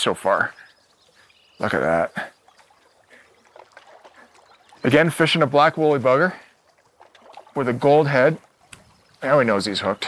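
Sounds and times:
fish splashing in water: 2.2 - 5.6, 6.3 - 9.2.

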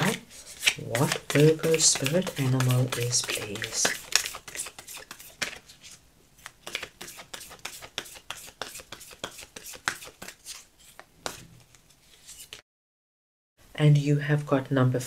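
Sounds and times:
cards being shuffled: 0.0 - 12.6.

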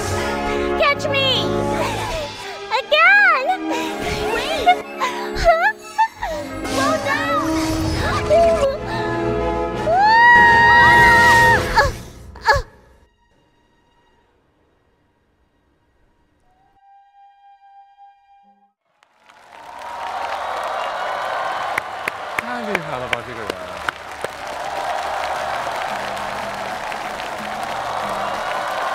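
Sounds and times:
background music: 0.0 - 18.4, 22.2 - 28.9
audience applause: 18.9 - 28.9.

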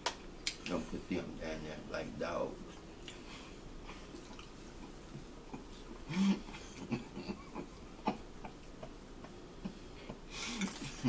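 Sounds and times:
chewing: 3.9 - 6.0.

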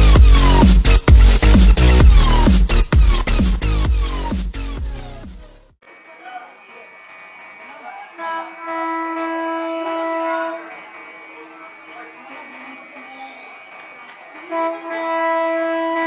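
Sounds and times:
distant train horn blast: 8.2 - 10.7, 14.5 - 16.0.

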